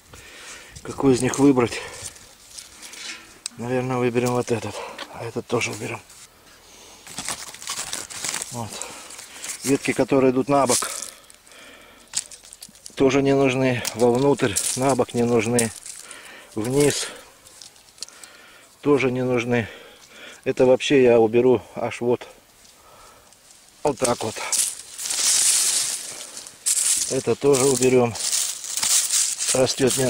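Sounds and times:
dry leaves and twigs rustling: 0.0s - 6.3s, 6.9s - 20.2s, 22.4s - 30.0s.

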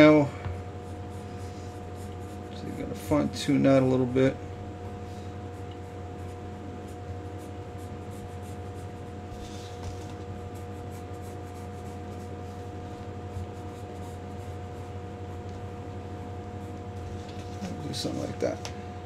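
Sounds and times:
low electrical hum: 0.0s - 19.0s
pencil scratching on paper: 0.8s - 3.2s, 5.5s - 15.6s.

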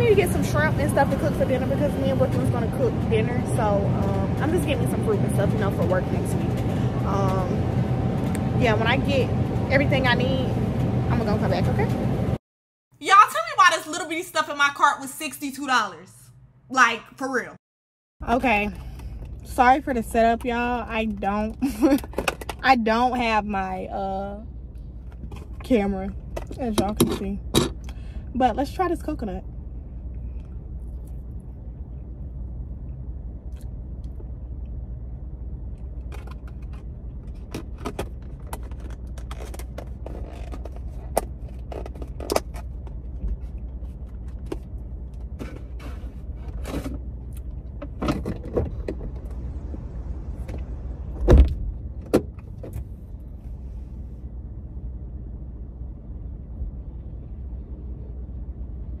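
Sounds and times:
low rumble in car cabin: 0.0s - 12.4s, 18.2s - 59.0s
loud thump: 51.2s - 52.3s.

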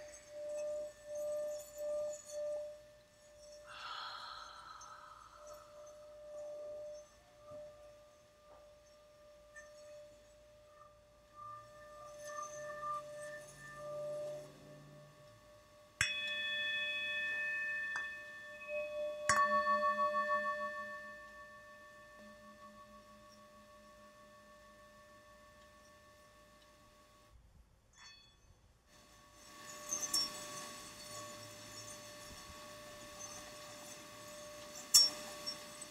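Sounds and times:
soft lingering ringing tones: 0.0s - 35.9s
singing bowl struck: 16.0s - 26.4s.

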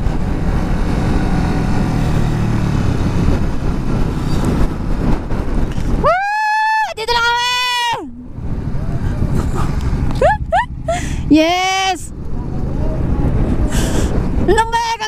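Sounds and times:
wind rush: 0.0s - 15.0s.

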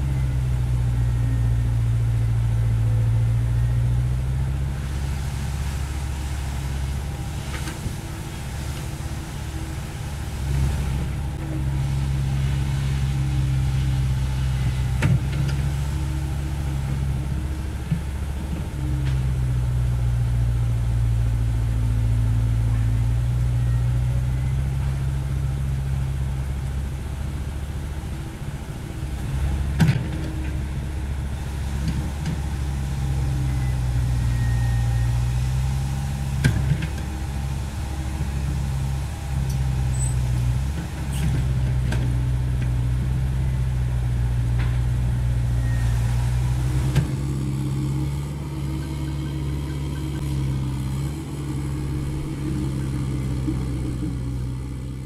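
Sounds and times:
excavator diesel engine running: 0.0s - 55.0s.

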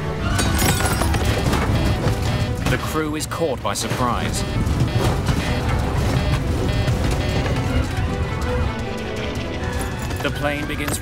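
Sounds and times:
dramatic music: 0.0s - 3.0s, 3.6s - 11.0s
aircraft rattling knocks: 3.7s - 9.0s.

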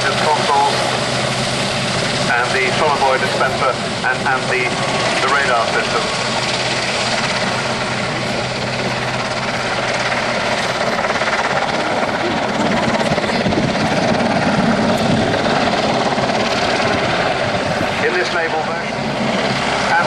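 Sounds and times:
helicopter flying: 0.0s - 20.0s.

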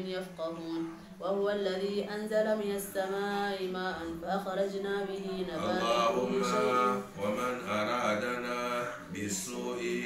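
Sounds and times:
man chanting recitation: 5.6s - 10.0s.

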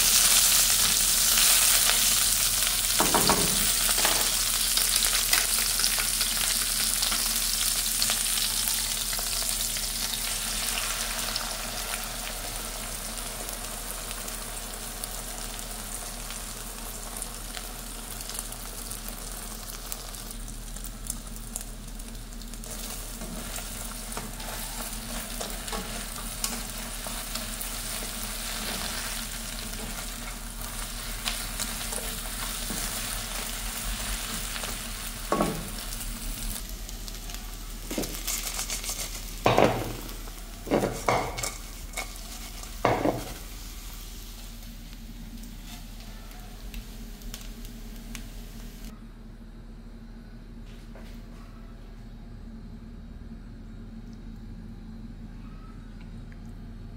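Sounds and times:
food sizzling in oil: 0.0s - 48.9s
spatula scraping wok: 45.5s - 46.2s.

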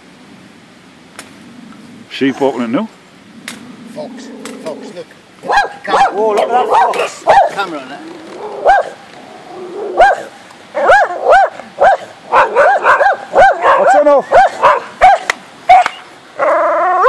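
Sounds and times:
dogs barking and yipping: 5.4s - 17.0s.

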